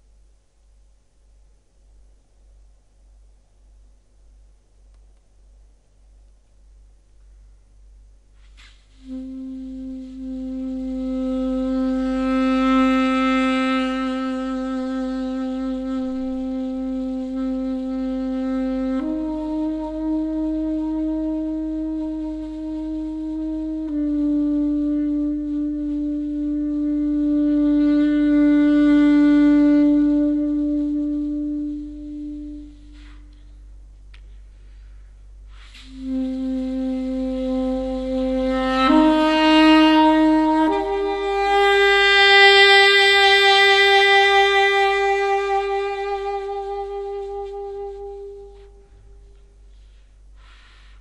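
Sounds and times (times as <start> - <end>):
alto saxophone long note: 8.4 - 51.0.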